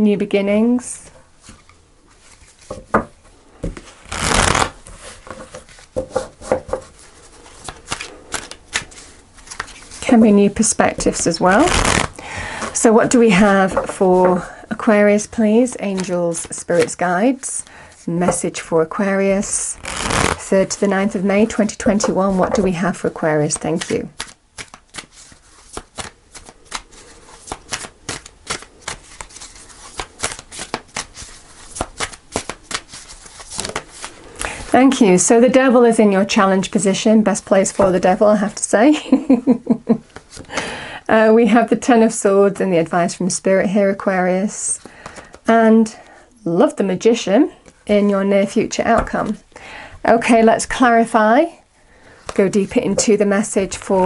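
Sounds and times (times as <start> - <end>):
cards riffle shuffling: 3.6 - 10.0, 11.6 - 12.2, 19.8 - 20.5, 23.6 - 34.7
cards knocking: 5.3 - 6.9.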